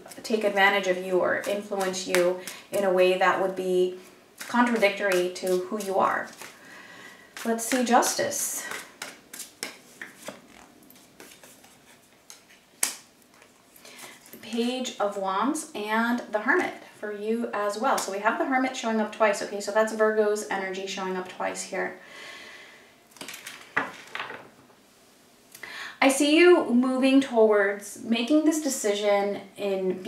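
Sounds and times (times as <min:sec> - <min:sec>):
cards clicking and rustling: 0:04.4 - 0:06.6, 0:08.7 - 0:13.6.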